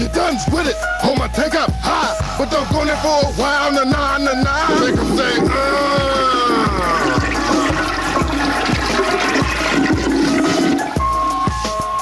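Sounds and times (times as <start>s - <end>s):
hip-hop beat: 0.0s - 12.0s
toilet flushing: 4.5s - 11.6s.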